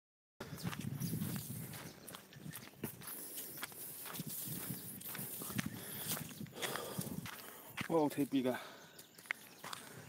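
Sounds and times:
footsteps on grass: 0:00.5 - 0:10.0.

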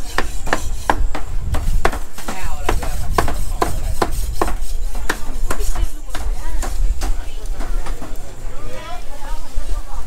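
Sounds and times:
cleaver chopping meat on wood: 0:00.0 - 0:07.7
low market rumble: 0:00.0 - 0:10.0.

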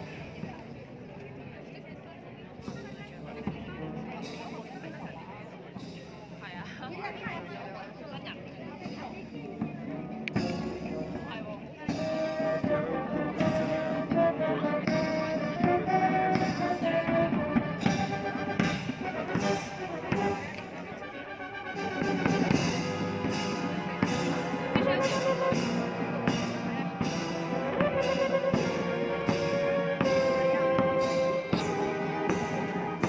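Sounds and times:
steady drum beat: 0:08.8 - 0:33.0
military brass band playing: 0:11.9 - 0:33.0.

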